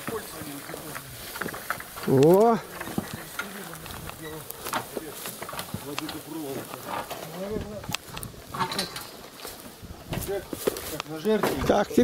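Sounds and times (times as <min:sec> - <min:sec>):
wooden cart knocking and clattering: 0:00.0 - 0:12.0.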